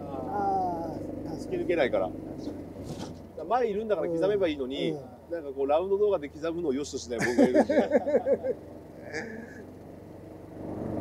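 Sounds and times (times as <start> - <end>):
golf cart humming: 0.0 - 11.0.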